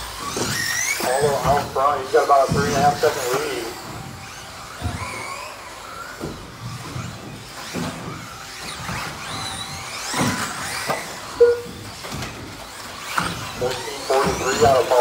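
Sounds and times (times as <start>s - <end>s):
rc car electric motors whining: 0.0s - 15.0s.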